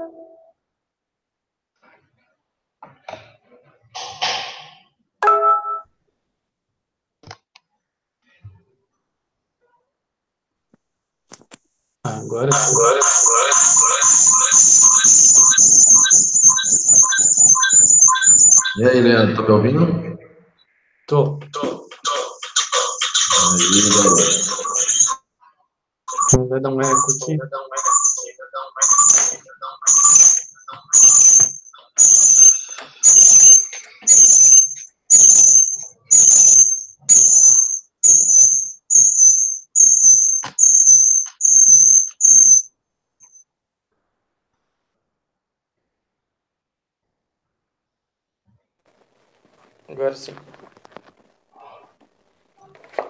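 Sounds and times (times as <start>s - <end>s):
electronic feedback whine with chirps: 12.6s - 19.4s, 26.1s - 43.4s.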